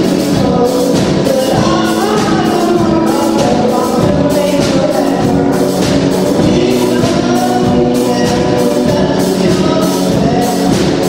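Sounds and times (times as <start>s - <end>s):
accordion: 0.0s - 11.0s
small band playing: 0.0s - 11.0s
strummed pulse: 0.0s - 11.0s.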